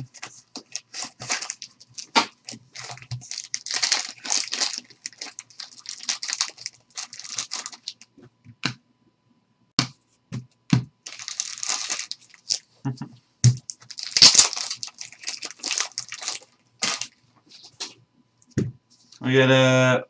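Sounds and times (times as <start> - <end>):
plastic wrapper crinkling: 0.0 - 8.1, 11.0 - 12.7, 13.5 - 17.2.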